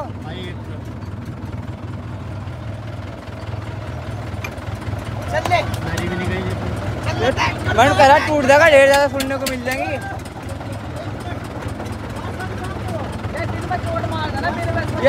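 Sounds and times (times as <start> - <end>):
tractor diesel engine idling: 0.0 - 15.0.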